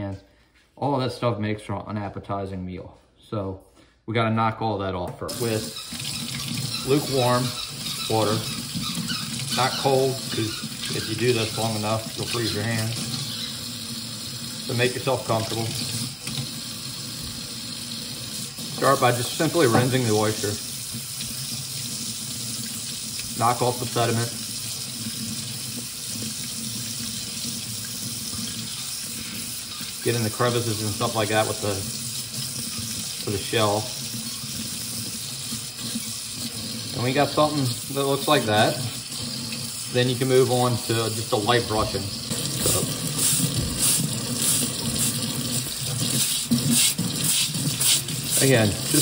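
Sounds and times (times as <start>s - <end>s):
brush scrubbing shell: 5.3s - 13.7s, 42.6s - 49.0s
tap water running onto shell: 5.3s - 49.0s
water splashing into steel sink: 5.3s - 49.0s
tap running into metal sink: 18.8s - 21.4s, 41.7s - 49.0s.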